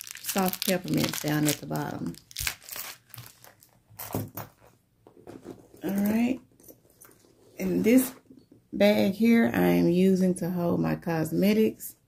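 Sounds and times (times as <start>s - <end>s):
candy wrappers crinkling: 0.0s - 4.1s.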